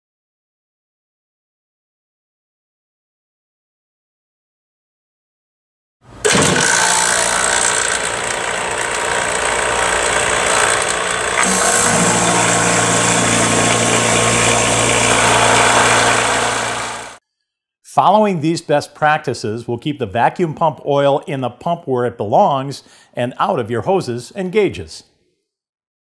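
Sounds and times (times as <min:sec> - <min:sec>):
vacuum pump motor drone: 0:06.2 - 0:17.2.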